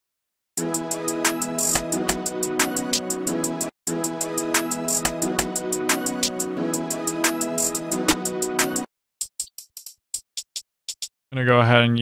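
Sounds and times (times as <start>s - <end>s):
hi-hat ticks: 9.2s - 11.1s.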